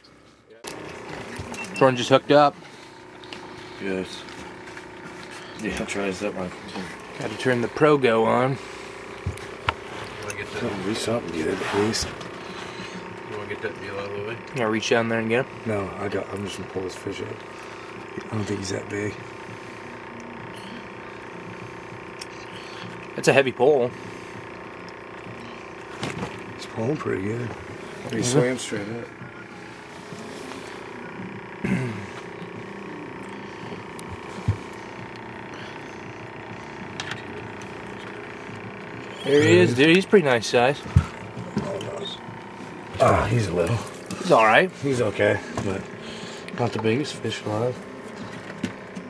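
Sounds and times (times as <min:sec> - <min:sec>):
steady mechanical hum: 0:00.0 - 0:49.0.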